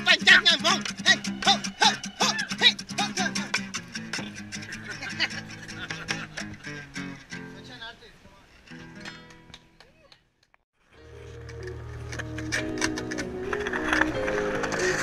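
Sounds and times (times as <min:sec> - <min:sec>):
acoustic guitar strumming: 0:00.0 - 0:07.7, 0:08.7 - 0:09.5.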